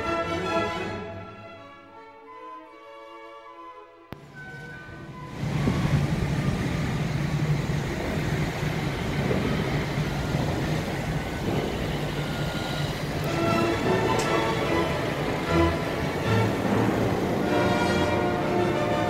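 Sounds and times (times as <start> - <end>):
vehicle engine rumble: 4.2 - 19.0.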